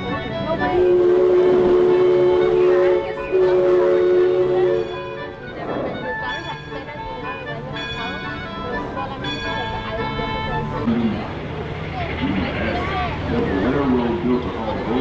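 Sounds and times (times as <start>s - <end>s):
music: 0.0s - 11.2s
voices: 0.0s - 15.0s
steam whistle chord: 0.6s - 6.5s.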